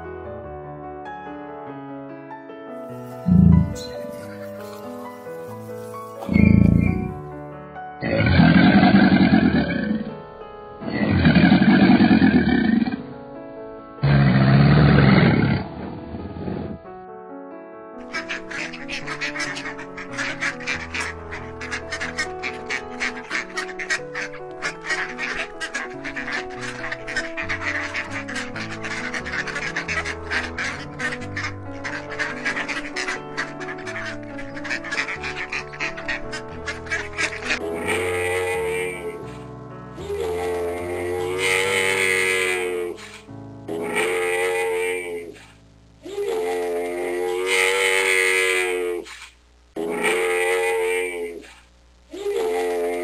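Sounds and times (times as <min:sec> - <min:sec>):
alligators bellowing: 0:06.3 - 0:07.2, 0:08.0 - 0:10.2, 0:10.8 - 0:13.0.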